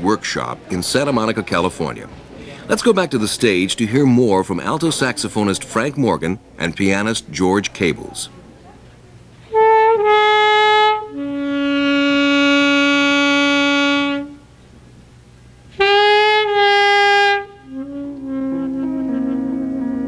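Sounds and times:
alto saxophone playing slow notes: 9.4s - 14.5s, 15.7s - 20.0s.

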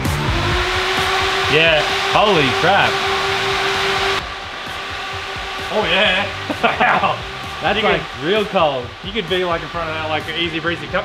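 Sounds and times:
electric fans rushing air: 0.0s - 11.0s.

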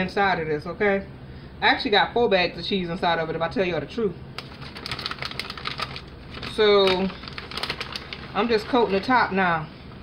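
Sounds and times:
plastic bag crinkling: 4.4s - 9.4s.

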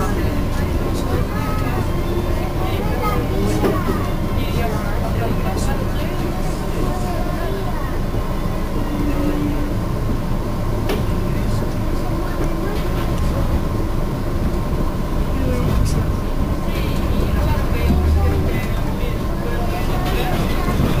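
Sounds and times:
people talking: 0.0s - 14.1s, 14.7s - 21.0s
train wheels rumbling on track: 0.0s - 21.0s.

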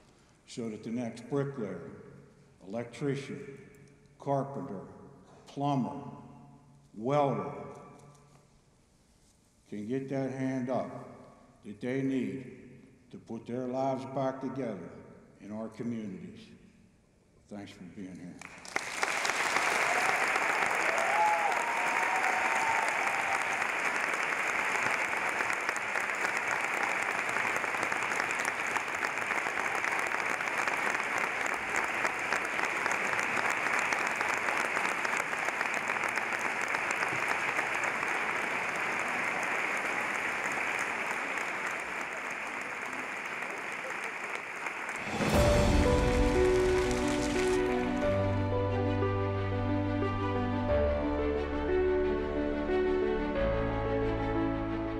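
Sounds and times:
audience applauding: 18.4s - 48.4s
audience cheering: 18.8s - 47.9s.

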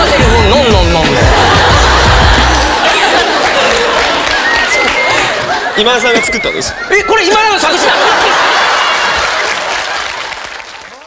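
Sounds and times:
audience applause: 1.2s - 6.2s, 7.6s - 11.0s.

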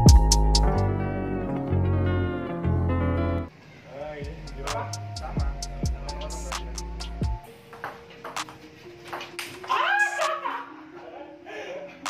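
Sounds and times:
background music: 0.0s - 3.5s, 4.2s - 12.0s.

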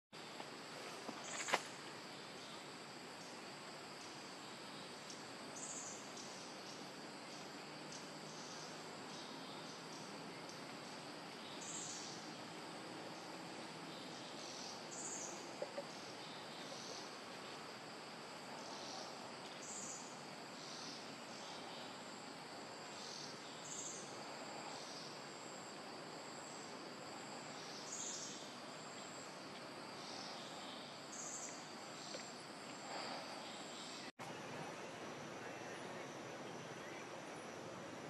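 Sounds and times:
insects buzzing: 0.2s - 38.0s.

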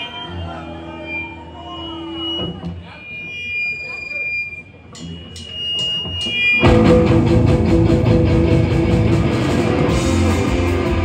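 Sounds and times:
guitar amp hum and feedback: 0.0s - 11.0s
bending guitar notes: 0.3s - 11.0s
rock band playing loudly: 5.1s - 11.0s.

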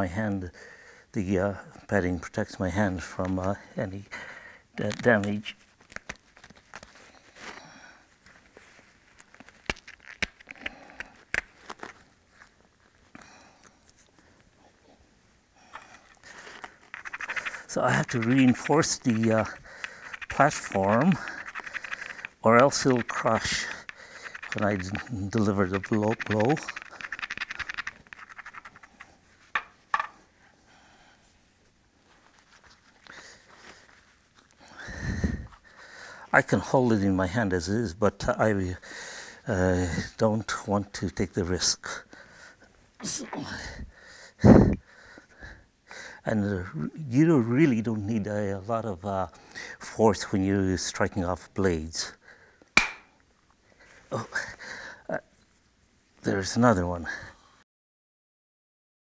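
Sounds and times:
leather pad rustling: 5.0s - 13.2s, 15.7s - 30.0s
scraping on flint edge: 15.7s - 30.1s
stone clicking on stone: 16.9s - 30.1s, 52.8s - 53.1s.

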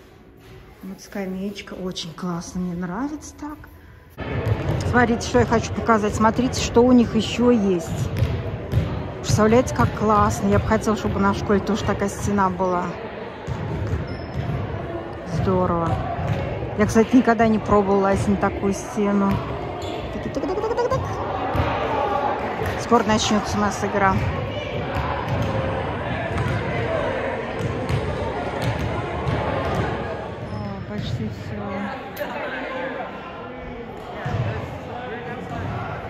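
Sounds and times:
people talking: 4.8s - 8.1s, 9.2s - 13.0s, 16.8s - 19.5s, 20.1s - 21.3s, 22.6s - 24.3s
basketballs bouncing on wooden floor: 7.9s - 12.4s, 13.4s - 14.7s, 15.8s - 16.6s, 19.2s - 21.9s, 22.6s - 30.1s.

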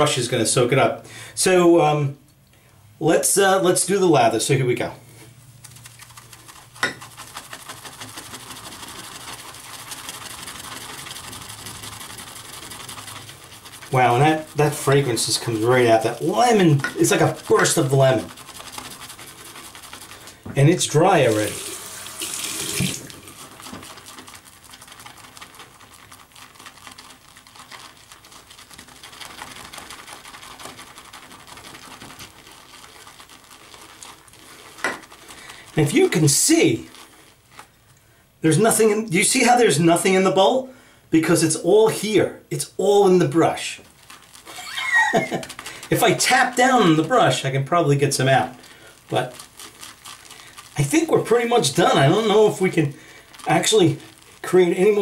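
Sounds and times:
shaving brush swishing in bowl: 3.8s - 37.8s, 42.8s - 55.0s.

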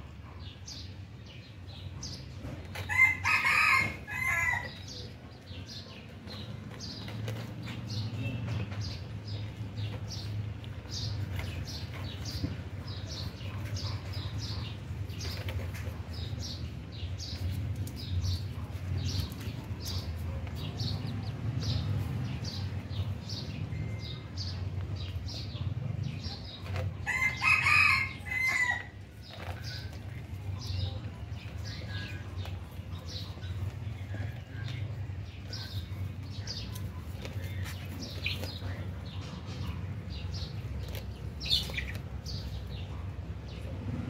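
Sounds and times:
chick peeping: 0.1s - 23.6s, 24.2s - 43.9s.

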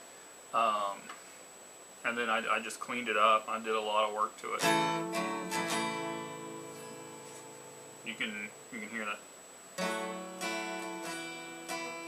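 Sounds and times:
acoustic guitar chord ringing: 4.6s - 9.2s, 9.8s - 12.0s.

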